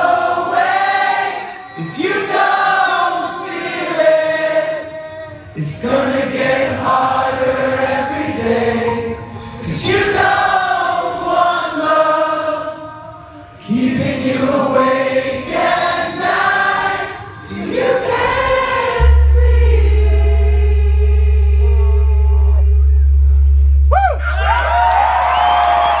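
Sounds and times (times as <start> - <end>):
voices singing held notes: 0.0 - 23.4
deep steady note: 18.2 - 26.0
crowd cheering and whistling: 21.6 - 26.0.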